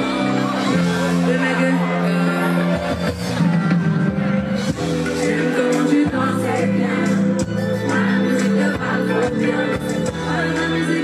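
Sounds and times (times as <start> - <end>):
woman singing into microphone: 0.0 - 3.2, 4.9 - 11.0
crowd singing together: 0.0 - 11.0
pop backing track with bass: 0.0 - 11.0.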